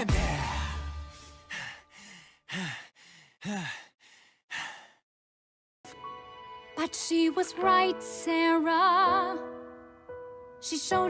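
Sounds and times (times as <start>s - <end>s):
person sighing: 0.2s - 5.0s.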